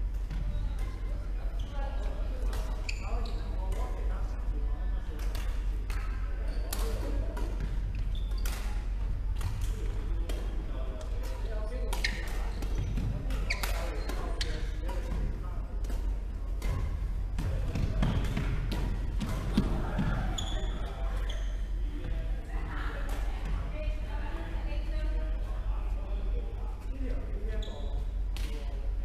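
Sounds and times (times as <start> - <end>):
steady low hum: 0.0 - 29.0.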